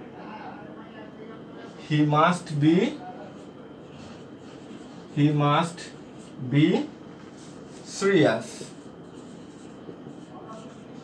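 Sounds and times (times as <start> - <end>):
marker pen writing on whiteboard: 1.7 - 11.0.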